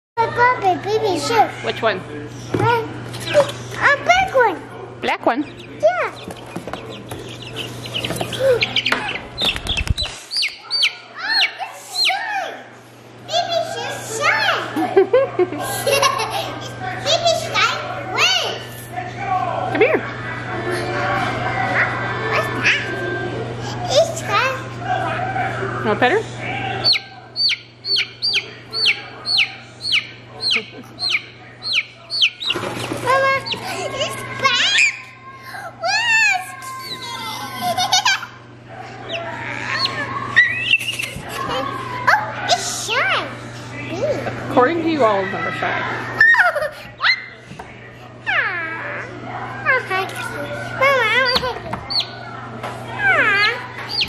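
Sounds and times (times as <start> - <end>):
steady low hum: 0.2 - 54.0
chicks peeping and chirping: 2.3 - 4.4, 5.0 - 12.6, 26.3 - 35.3, 36.4 - 42.6, 50.2 - 54.0.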